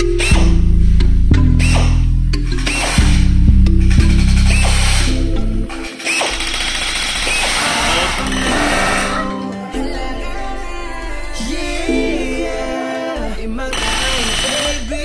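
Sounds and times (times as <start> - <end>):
background music with heavy bass: 0.0 - 15.0
pneumatic rivet gun rattling: 5.8 - 8.0, 13.8 - 14.8.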